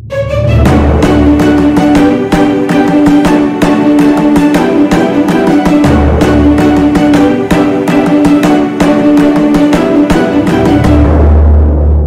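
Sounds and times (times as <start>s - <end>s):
plucked string notes: 0.0s - 11.7s.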